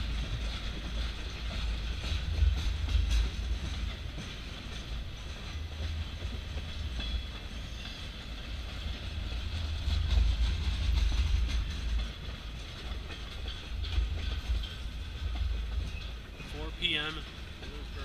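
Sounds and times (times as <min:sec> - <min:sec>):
train wheels rumbling on rail: 0:00.0 - 0:18.0
wheels clicking over rail joints: 0:00.0 - 0:18.0.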